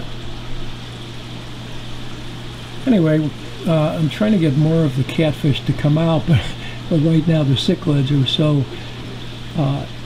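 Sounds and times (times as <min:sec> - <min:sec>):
low pump hum: 0:00.0 - 0:10.0.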